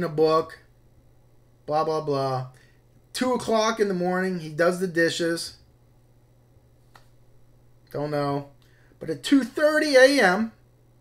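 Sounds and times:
faint low hum: 0.0 - 11.0
soft sharp click: 6.9 - 7.2.

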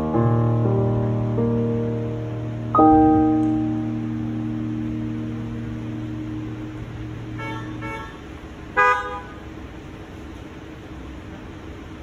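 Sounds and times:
digital piano chord: 0.0 - 8.4
car horn honking: 7.3 - 9.5.

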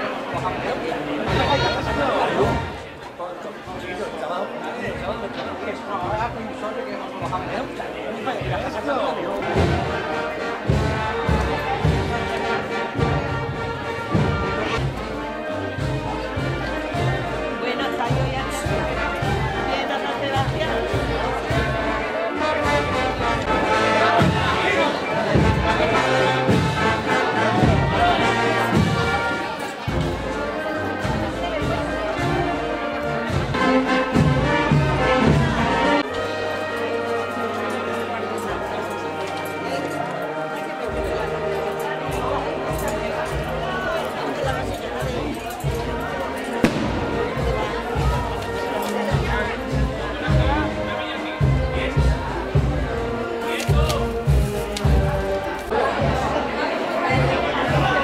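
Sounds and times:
brass band playing march: 0.0 - 58.0
crowd chatter: 0.0 - 58.0
drum beats: 8.4 - 22.0, 22.6 - 36.4, 42.8 - 56.4.

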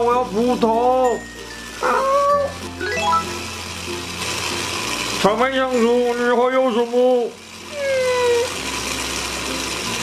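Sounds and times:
background music: 0.0 - 7.0
toy motor whirring: 0.0 - 10.0.

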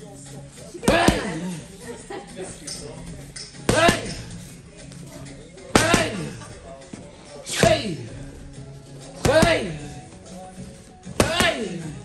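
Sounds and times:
boxing gloves smacking pads: 0.8 - 1.4, 3.7 - 4.2, 5.7 - 6.2, 9.2 - 9.7, 11.1 - 11.7.

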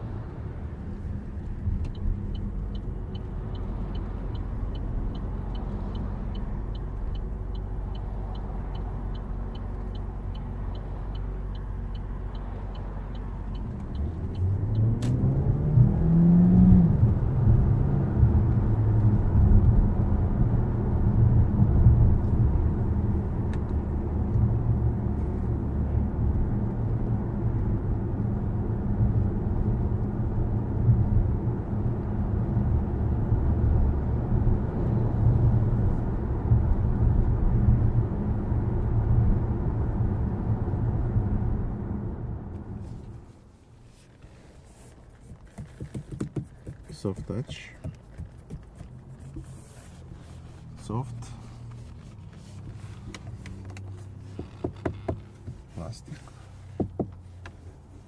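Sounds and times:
engine and road noise drone: 0.0 - 58.0
turn indicator ticking: 1.0 - 15.6, 45.0 - 49.6, 50.8 - 57.6
engine accelerating: 13.4 - 19.3.

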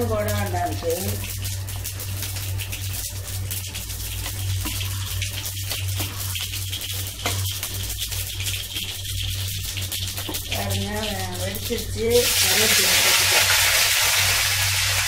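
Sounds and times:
low burner hum: 0.0 - 15.0
stew simmering crackling hiss: 0.0 - 15.0.

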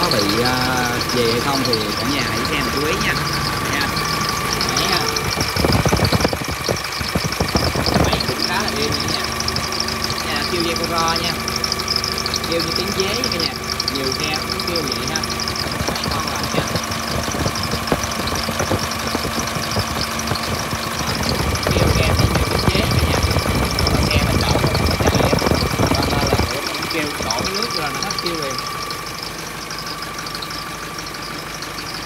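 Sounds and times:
diesel truck engine running: 0.0 - 32.0
drive belt whining: 0.0 - 32.0.

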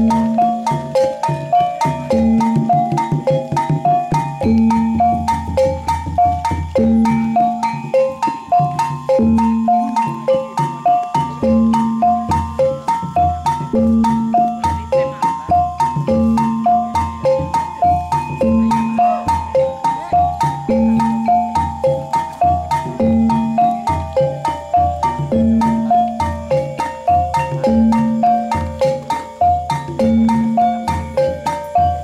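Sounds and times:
metallophones cycling melody: 0.0 - 32.0
sharp percussion strokes: 0.0 - 32.0.

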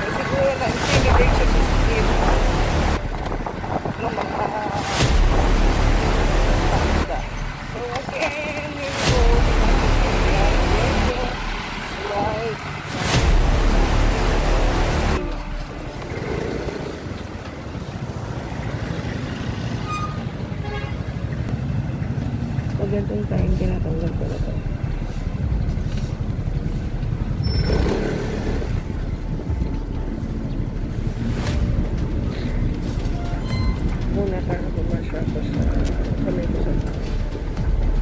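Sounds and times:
motorcycle engine and wind rumble: 0.0 - 5.1, 12.0 - 12.6.

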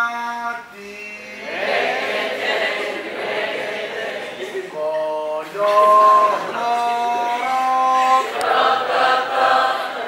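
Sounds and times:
group of voices singing: 1.2 - 10.0.

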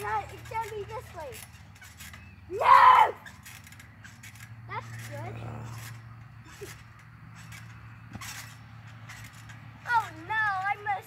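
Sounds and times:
trampoline mat knocks and rustles: 0.0 - 10.9.

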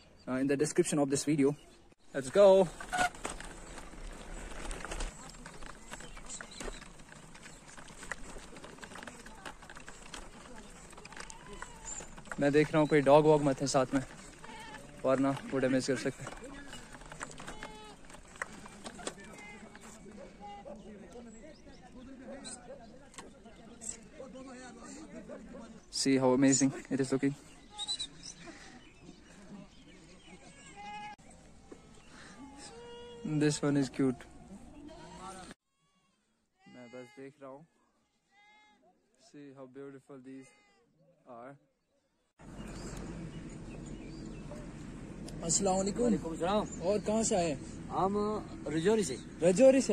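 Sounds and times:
goats and sheep bleating: 10.8 - 12.4, 13.9 - 15.6, 16.3 - 20.7, 32.0 - 33.5
goats bleating: 14.1 - 15.0, 17.2 - 18.2.

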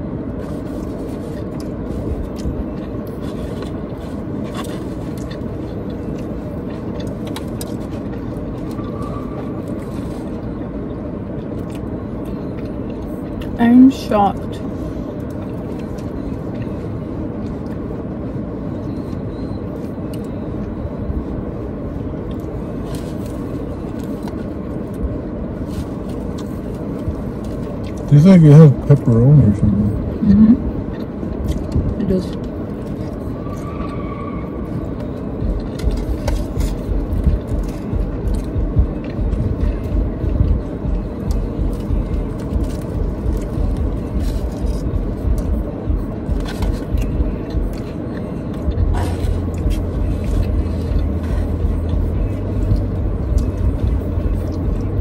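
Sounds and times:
car engine idling: 0.0 - 55.0
steady low rumble: 0.0 - 55.0
chewing: 0.4 - 13.6, 34.6 - 45.7.

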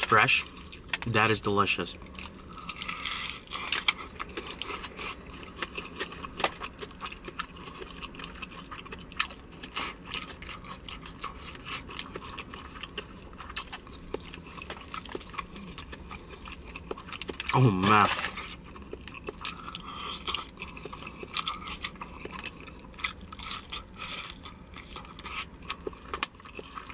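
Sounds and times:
crunchy chewing: 2.0 - 26.9.

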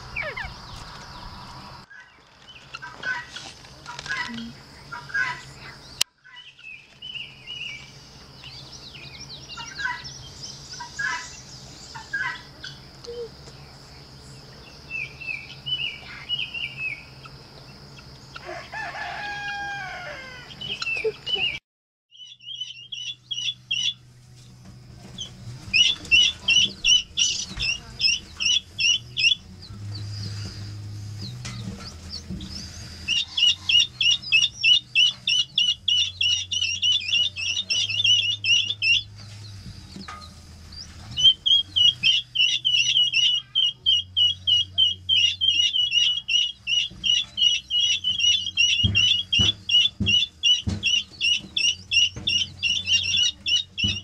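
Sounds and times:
bird calls outdoors: 0.0 - 18.5, 19.5 - 54.0
chicks peeping shrilly: 0.0 - 54.0.

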